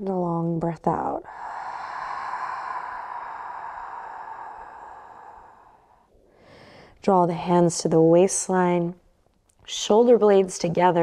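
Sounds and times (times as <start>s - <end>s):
slow exhale through mouth: 1.2s - 6.8s.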